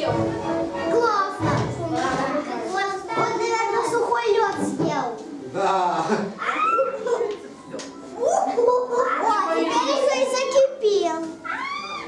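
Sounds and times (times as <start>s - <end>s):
music: 0.0s - 2.4s
children calling and chattering: 0.0s - 5.5s, 6.1s - 12.0s.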